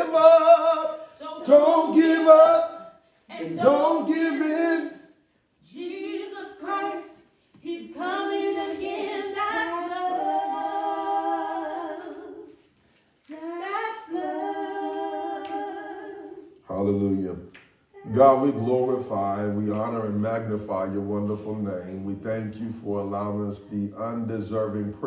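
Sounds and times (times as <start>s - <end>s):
woman singing unaccompanied: 5.7s - 12.5s.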